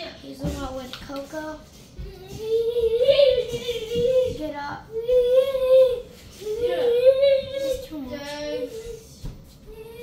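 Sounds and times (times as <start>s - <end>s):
child singing or humming: 1.3s - 10.0s.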